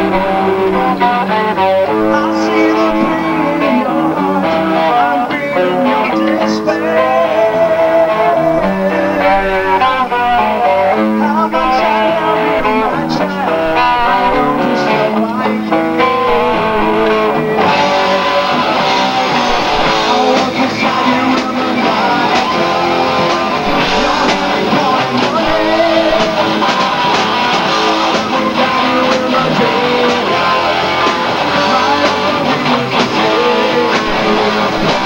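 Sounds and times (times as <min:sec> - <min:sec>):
live heavy metal band: 0:00.0 - 0:35.0.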